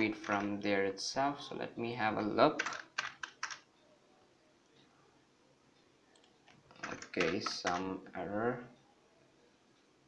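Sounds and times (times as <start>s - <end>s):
computer keyboard key presses: 2.6s - 3.6s, 6.2s - 7.9s.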